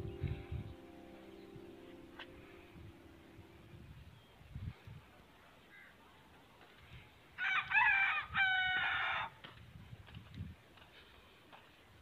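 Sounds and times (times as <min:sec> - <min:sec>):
rooster crowing: 0:07.4 - 0:09.4.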